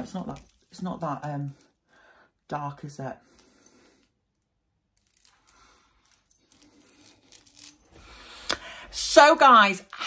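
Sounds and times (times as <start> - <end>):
chain links clinking: 0.0 - 1.8, 3.2 - 8.5.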